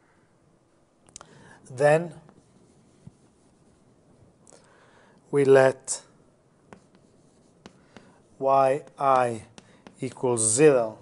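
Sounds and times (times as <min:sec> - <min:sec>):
light taps of strokes: 0:06.7 - 0:08.2, 0:08.8 - 0:10.3
writing on a board: 0:06.7 - 0:10.6.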